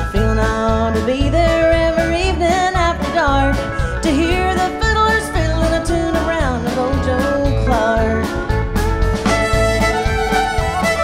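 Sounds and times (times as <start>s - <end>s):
woman singing: 0.0s - 8.5s
live country band: 0.0s - 11.0s.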